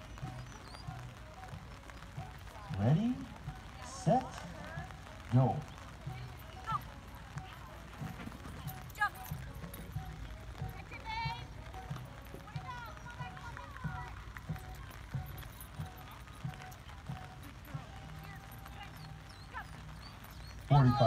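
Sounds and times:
birds chirping and trilling: 0:00.0 - 0:04.4, 0:18.0 - 0:21.0.

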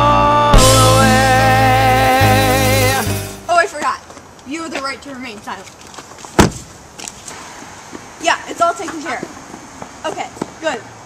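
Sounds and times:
car door shutting thud: 0:06.4 - 0:06.7.

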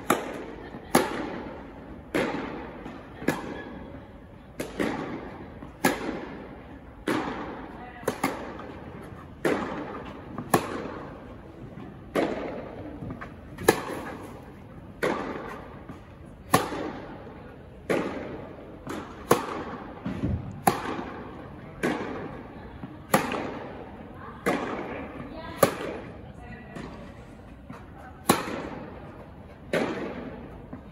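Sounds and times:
tennis balls struck by rackets: 0:00.0 - 0:30.9.

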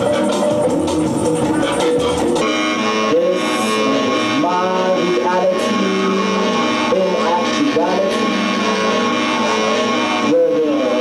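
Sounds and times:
musical backing: 0:00.0 - 0:11.0
wordless wavering vocals: 0:00.0 - 0:11.0.

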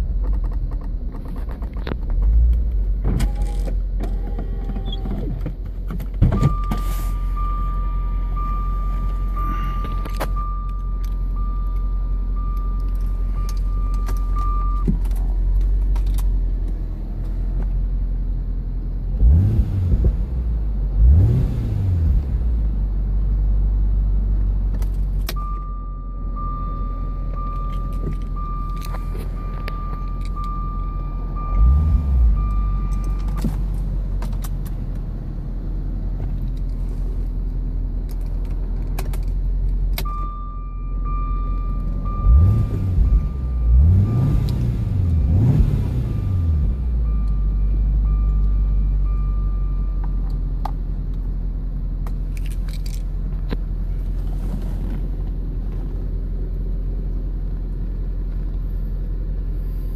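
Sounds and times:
car engine idling and revving: 0:00.0 - 0:59.9
steady high warning tone: 0:06.4 - 0:14.9, 0:25.4 - 0:33.4.

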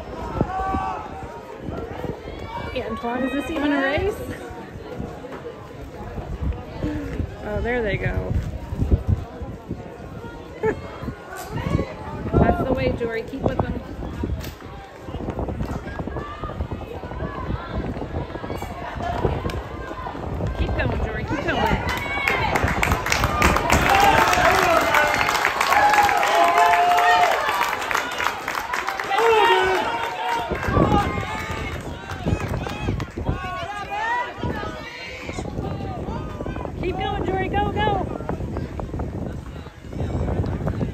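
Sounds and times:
crowd cheering and shouting: 0:00.0 - 0:08.1, 0:08.7 - 0:40.9.

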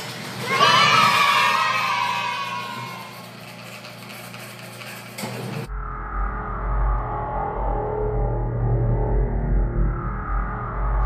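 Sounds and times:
cheer of high voices: 0:00.1 - 0:03.3
music with deep low tone: 0:05.7 - 0:11.0.

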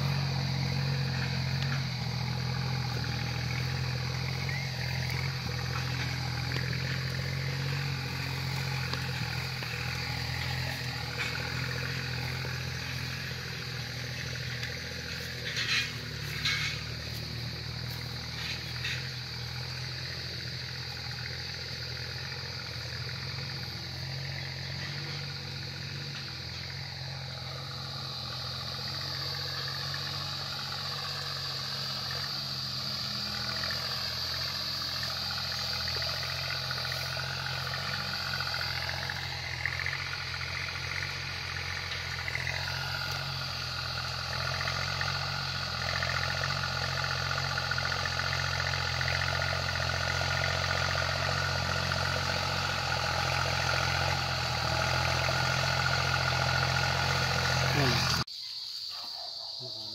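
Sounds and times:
tractor engine under load: 0:00.0 - 0:58.3.

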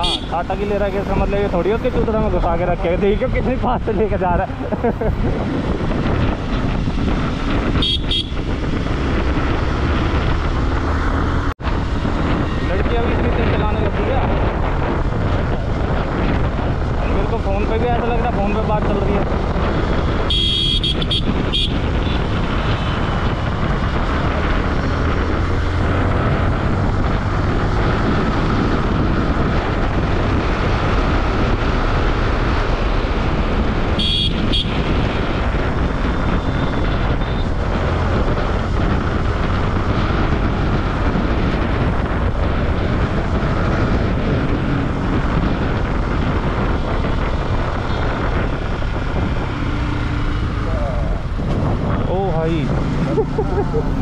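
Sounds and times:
vehicle horns honking: 0:00.0 - 0:00.4, 0:07.8 - 0:08.5, 0:20.2 - 0:23.1, 0:34.0 - 0:35.1, 0:36.3 - 0:37.5
motorcycle engine rumble: 0:00.0 - 0:54.0
wind noise: 0:00.0 - 0:54.0.

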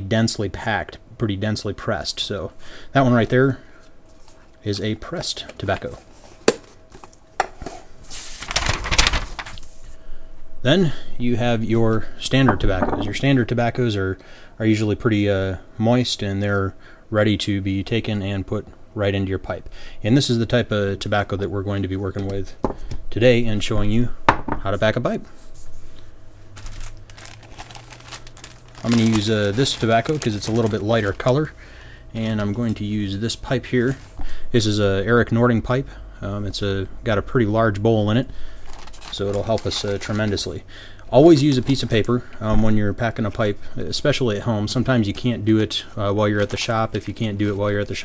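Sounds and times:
low steady hum: 0:00.0 - 0:48.0
paper rustling: 0:05.4 - 0:09.8, 0:26.6 - 0:31.5, 0:33.8 - 0:34.2, 0:38.6 - 0:40.6, 0:41.4 - 0:42.2, 0:46.2 - 0:48.0
plastic bag crinkling: 0:08.2 - 0:09.7, 0:26.5 - 0:33.2, 0:38.6 - 0:42.2, 0:46.2 - 0:48.0.

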